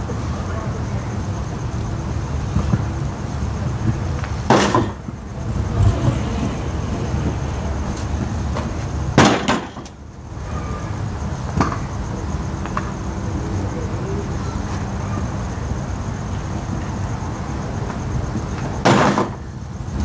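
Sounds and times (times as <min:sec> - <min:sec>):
steady low rumble: 0:00.0 - 0:18.8
loud sharp impact: 0:09.1 - 0:09.9, 0:18.8 - 0:19.4.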